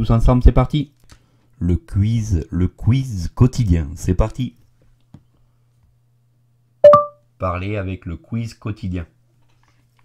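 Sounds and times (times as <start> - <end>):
smart speaker listening chime: 6.8 - 7.2.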